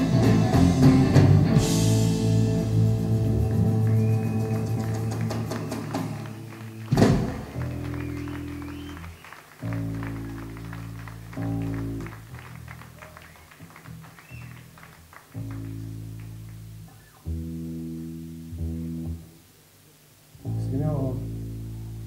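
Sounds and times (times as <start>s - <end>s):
rock band chord with cymbal wash: 0.0s - 6.2s
loud final band hit: 0.0s - 7.9s.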